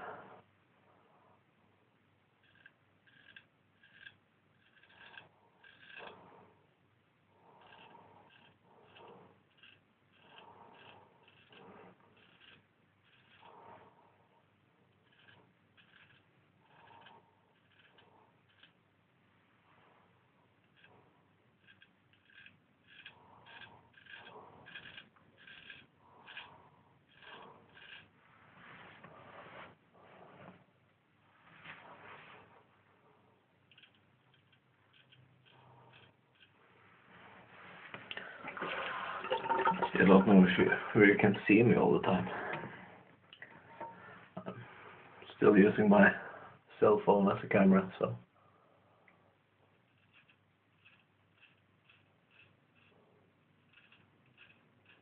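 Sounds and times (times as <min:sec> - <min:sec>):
straight razor scraping stubble: 0:02.4 - 0:06.5, 0:21.6 - 0:28.1.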